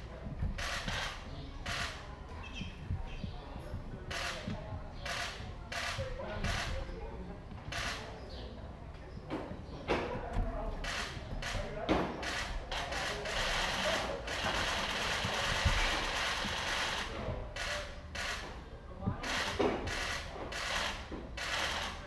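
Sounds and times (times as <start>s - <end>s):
indistinct background voices: 0.0s - 22.0s.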